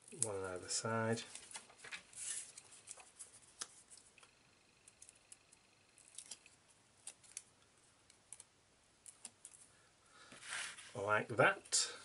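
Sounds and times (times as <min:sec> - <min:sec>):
fingers handling paper clicks: 0:04.8 - 0:09.6.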